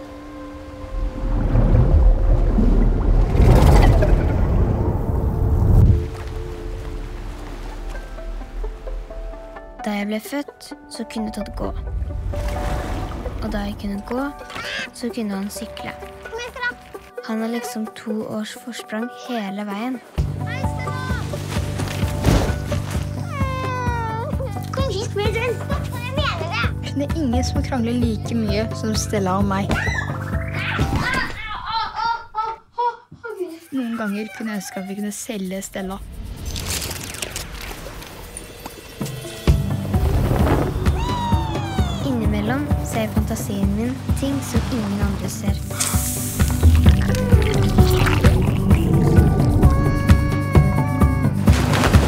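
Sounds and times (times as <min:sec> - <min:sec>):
rushing water rumble: 0:00.0 - 0:09.9, 0:11.1 - 0:17.1, 0:20.2 - 0:25.2, 0:35.6 - 0:52.0
child crying: 0:14.4 - 0:15.0, 0:23.2 - 0:24.6, 0:29.8 - 0:35.2, 0:41.0 - 0:42.2, 0:47.1 - 0:51.5.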